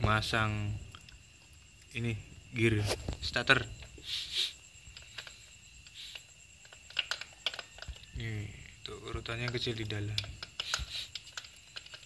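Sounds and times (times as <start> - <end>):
metallic clicks and taps: 4.9 - 8.1.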